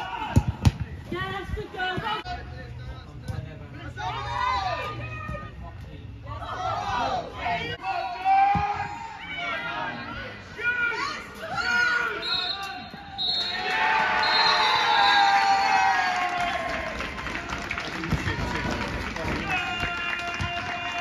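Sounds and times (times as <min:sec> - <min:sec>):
spectators and players shouting: 0:00.0 - 0:00.7, 0:03.8 - 0:05.6, 0:06.3 - 0:17.0
crowd cheering: 0:10.9 - 0:21.0.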